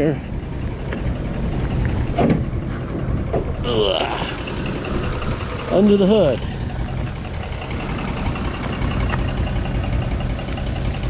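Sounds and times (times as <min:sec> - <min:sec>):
wind buffeting microphone: 0:00.3 - 0:11.0.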